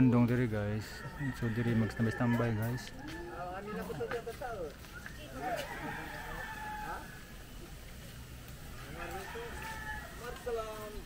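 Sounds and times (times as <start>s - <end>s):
rooster crowing: 0.8s - 3.8s, 5.4s - 7.4s, 8.8s - 11.0s.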